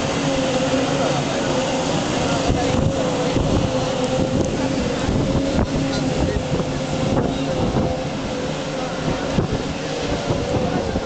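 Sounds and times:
racing boat engines: 0:00.0 - 0:11.0
wind noise on microphone: 0:02.0 - 0:11.0.

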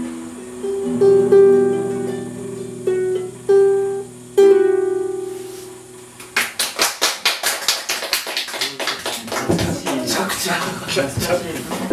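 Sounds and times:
ukulele chord: 0:00.0 - 0:06.2
hand clapping: 0:06.2 - 0:10.7.

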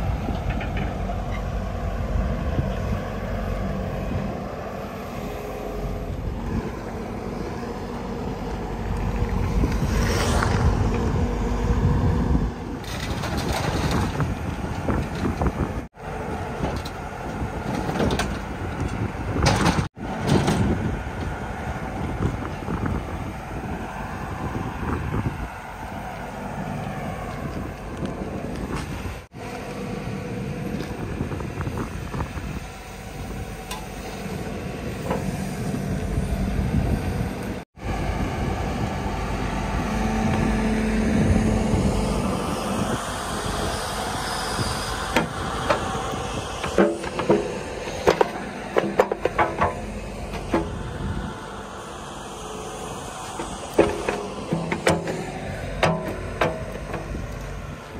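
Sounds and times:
excavator diesel engine running: 0:00.0 - 0:57.9
hydraulics working: 0:00.0 - 0:57.9
metal clanks and knocks: 0:46.6 - 0:50.8, 0:53.4 - 0:57.4.

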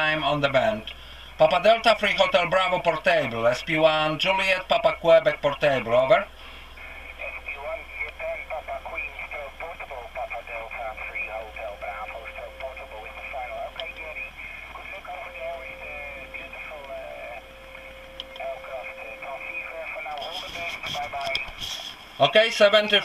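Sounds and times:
thin radio voice with band noise: 0:06.8 - 0:22.4.

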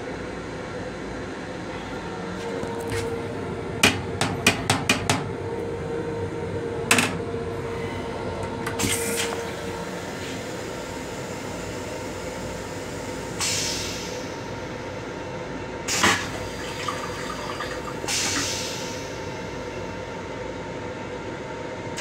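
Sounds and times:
train car rumble and hum: 0:00.0 - 0:22.0.

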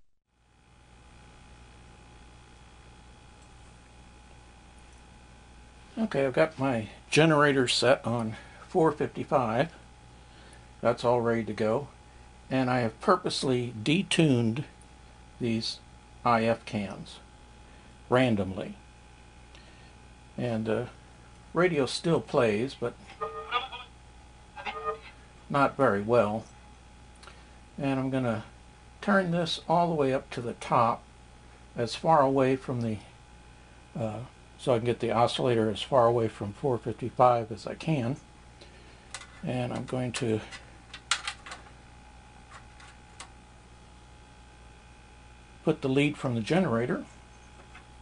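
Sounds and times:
steady low hum: 0:00.3 - 0:48.0
weak music from radio speaker: 0:00.4 - 0:48.0.

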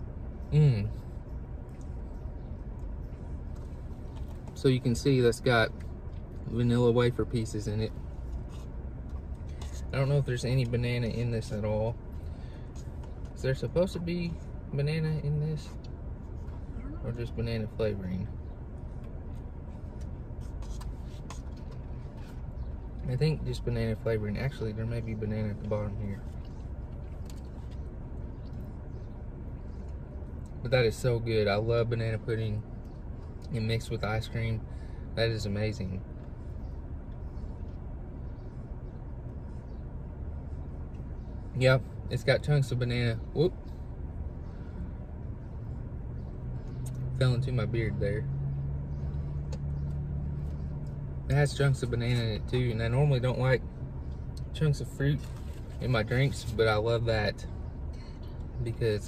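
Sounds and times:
low hum in car cabin: 0:00.0 - 0:59.0.

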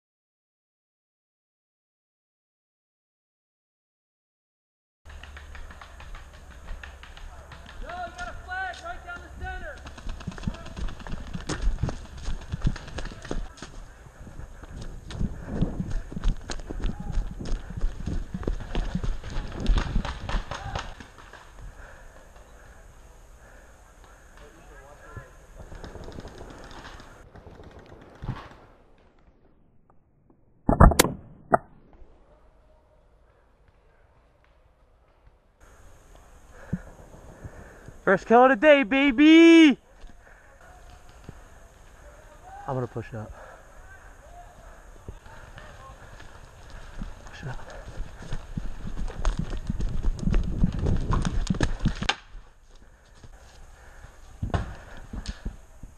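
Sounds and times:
running footsteps on pine needles: 0:05.1 - 0:28.5, 0:33.7 - 0:55.6
paintball marker shots: 0:30.7 - 0:31.7
voices shouting: 0:38.0 - 0:47.7.

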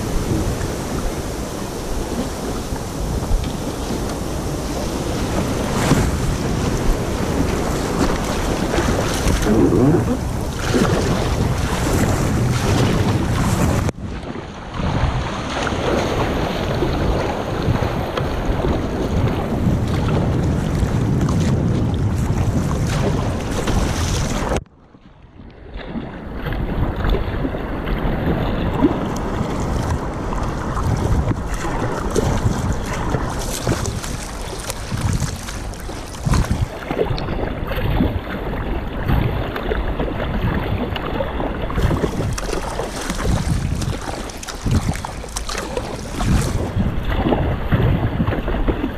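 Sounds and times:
paddle dipping in water: 0:00.0 - 0:48.9
water rushing along a hull: 0:00.0 - 0:48.9
wind on microphone: 0:00.0 - 0:48.9.

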